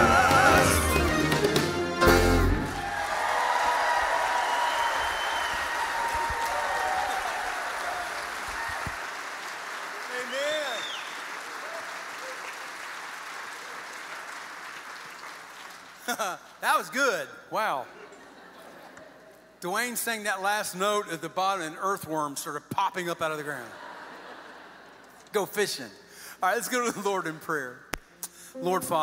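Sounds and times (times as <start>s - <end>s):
male quartet singing: 0.0s - 2.5s
congregation applauding: 0.0s - 16.6s.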